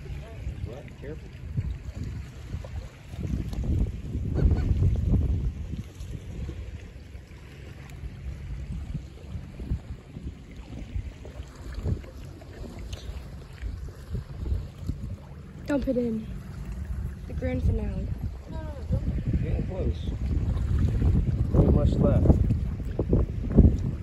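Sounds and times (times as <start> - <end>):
wind buffeting microphone: 0.0 - 24.0
gulls honking calls: 4.3 - 4.8.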